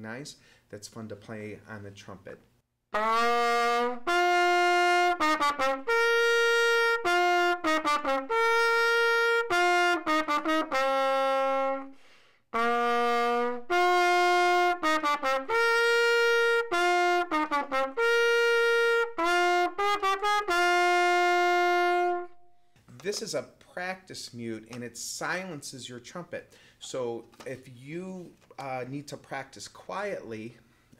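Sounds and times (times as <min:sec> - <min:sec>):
trumpet playing a simple tune: 0:02.9 - 0:22.7.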